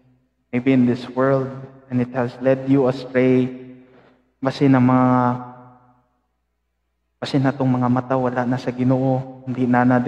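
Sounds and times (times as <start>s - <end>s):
man's voice holding a pitch: 0.5s - 3.7s, 4.4s - 5.6s, 7.2s - 10.0s.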